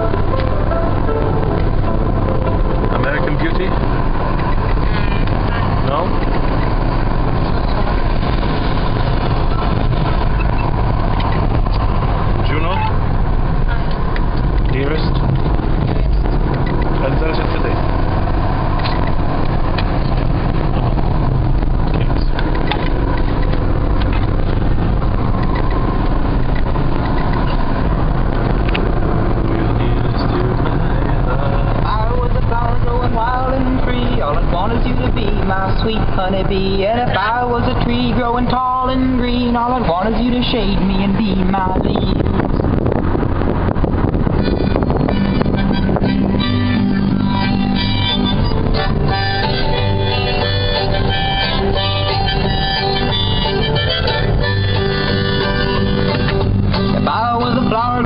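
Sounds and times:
car engine and road noise inside: 0.0s - 58.0s.

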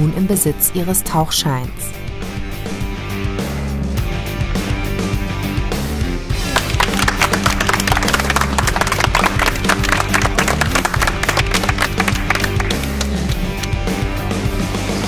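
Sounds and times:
rock music: 1.9s - 15.0s
people clapping: 6.4s - 13.9s.

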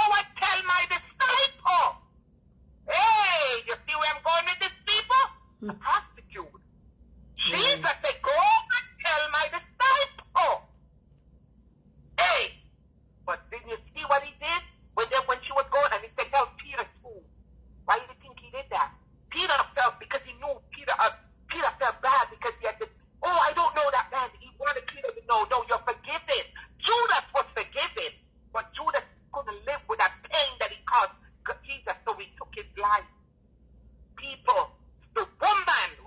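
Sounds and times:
person talking: 2.9s - 6.5s, 7.4s - 10.6s, 17.9s - 33.0s.

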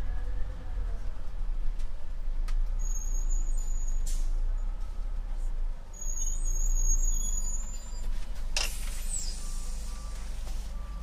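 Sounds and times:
bus engine running low: 0.0s - 11.0s.

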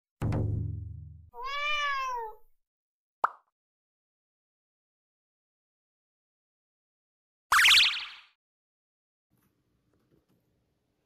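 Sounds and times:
cat meow: 1.4s - 2.5s.

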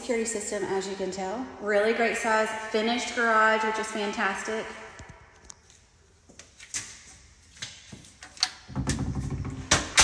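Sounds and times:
door thumps: 8.7s - 9.8s.

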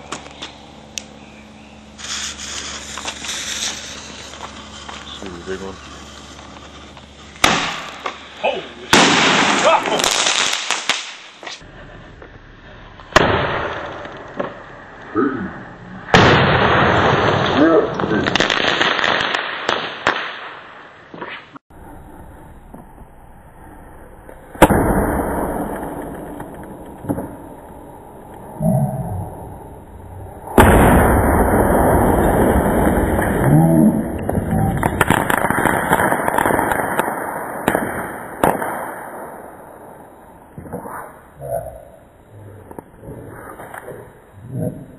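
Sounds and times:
firecrackers crackling: 0.0s - 15.2s, 15.8s - 21.6s, 24.2s - 44.9s
firework bangs: 1.8s - 11.6s, 13.0s - 14.8s, 16.0s - 21.6s, 24.5s - 41.4s
scattered pops: 2.0s - 8.3s, 32.2s - 40.8s.

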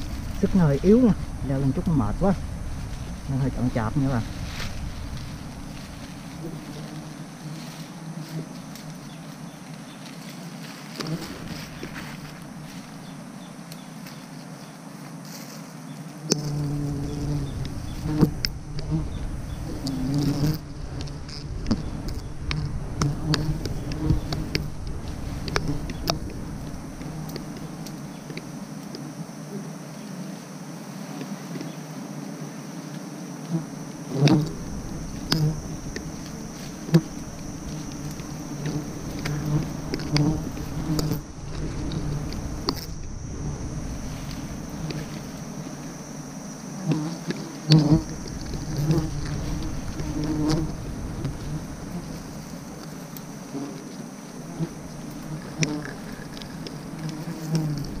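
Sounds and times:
bees buzzing: 0.0s - 15.2s, 15.8s - 58.0s
leaves and twigs rustling: 0.0s - 58.0s.

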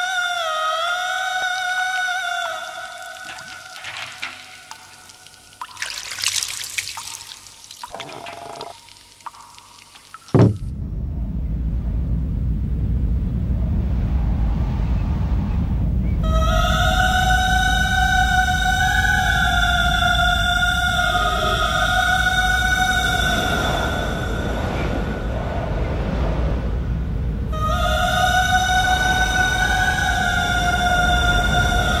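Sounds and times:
water splashes and drips: 2.8s - 10.7s
sudden hit: 10.3s - 11.2s
deep steady rumble: 10.4s - 32.0s.

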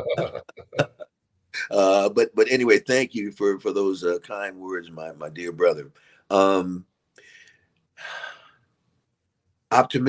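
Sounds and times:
man breathing: 7.2s - 8.8s.

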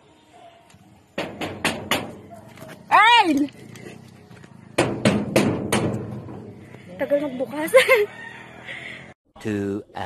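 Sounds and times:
knocking on a door: 1.2s - 2.2s, 4.8s - 6.4s.

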